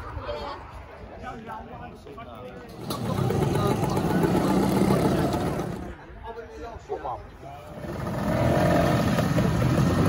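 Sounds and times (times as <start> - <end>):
scooter engine passing by: 2.8 - 6.0, 7.7 - 10.0.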